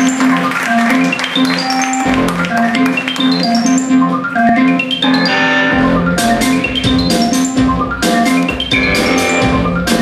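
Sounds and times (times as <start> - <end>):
keyboard music: 0.0 - 10.0.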